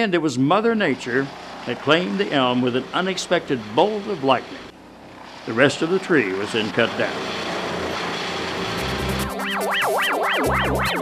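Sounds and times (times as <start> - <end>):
wood chipper running: 0.7 - 9.4
warbling synth tone: 8.4 - 11.0
electronic music: 8.6 - 11.0.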